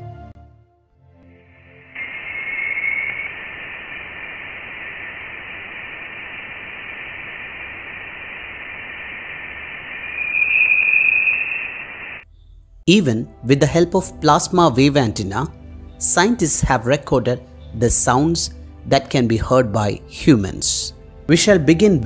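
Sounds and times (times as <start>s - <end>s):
steady hiss: 1.6s - 12.2s
whistling tone: 1.9s - 5.2s, 9.6s - 12.2s.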